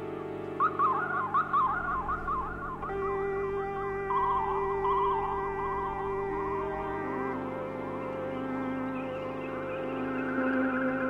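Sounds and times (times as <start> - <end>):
sustained synth drone: 0.0 - 11.0
swooping lead synthesizer tone: 0.6 - 11.0.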